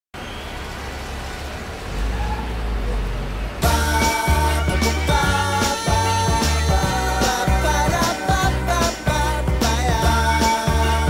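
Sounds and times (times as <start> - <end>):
traffic rumble: 0.2 - 3.6.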